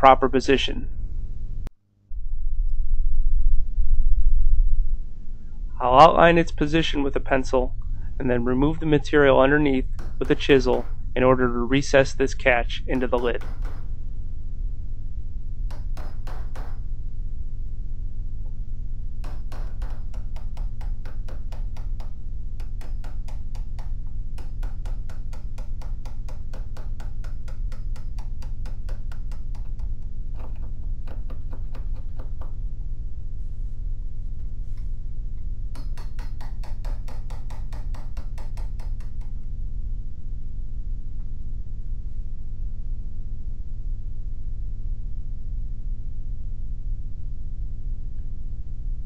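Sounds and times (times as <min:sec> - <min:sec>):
steady low hum: 0:00.0 - 0:49.0
chisel tapping into wood: 0:10.0 - 0:11.0, 0:12.9 - 0:13.8, 0:19.2 - 0:32.5, 0:35.8 - 0:39.3.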